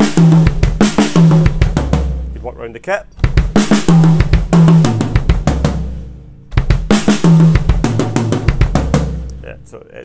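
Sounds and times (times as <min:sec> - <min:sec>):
snare and tom drum strokes: 0:00.0 - 0:09.6
bass drum beats: 0:00.0 - 0:09.8.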